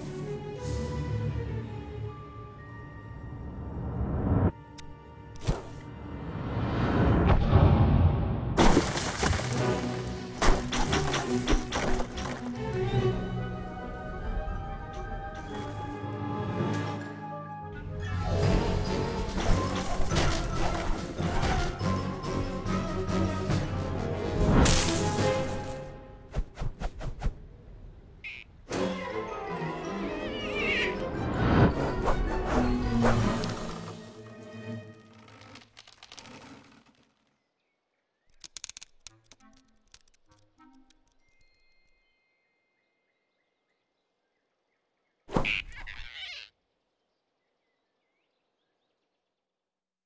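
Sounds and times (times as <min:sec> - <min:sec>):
orchestral film score: 0:00.0 - 0:08.6, 0:09.5 - 0:26.6, 0:28.7 - 0:35.7
faint bird chirps: 0:28.2 - 0:28.6, 0:41.2 - 0:49.5
cartoon squirrel squeak: 0:30.3 - 0:31.0, 0:45.4 - 0:46.6.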